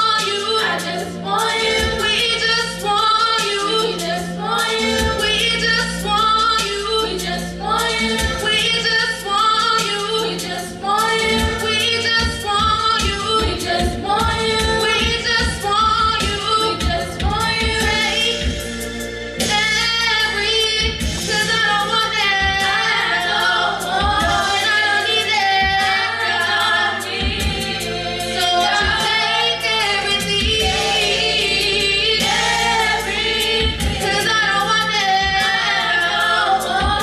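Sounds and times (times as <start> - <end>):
women singing gospel in harmony: 0.0 - 37.0.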